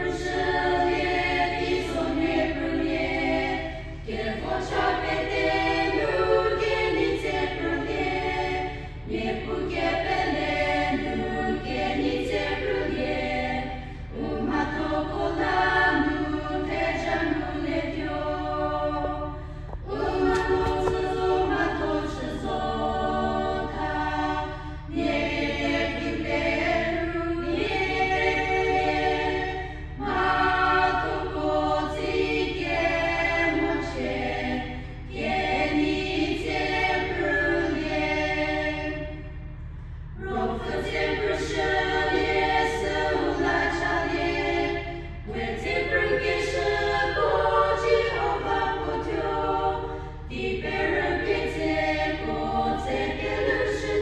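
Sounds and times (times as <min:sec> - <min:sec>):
group singing a hymn: 0:00.0 - 0:54.0
steady low hum: 0:00.0 - 0:54.0.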